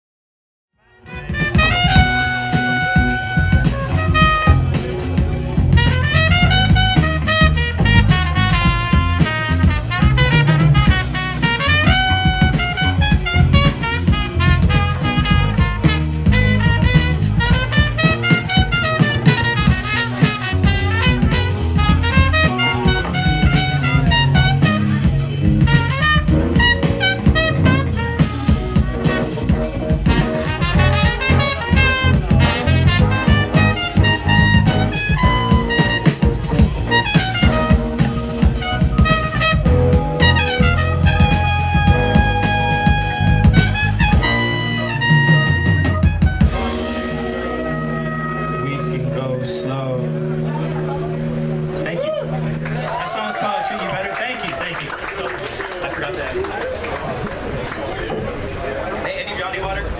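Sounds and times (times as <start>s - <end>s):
trumpet solo: 0.8s - 54.8s
band beat and bass: 0.9s - 57.5s.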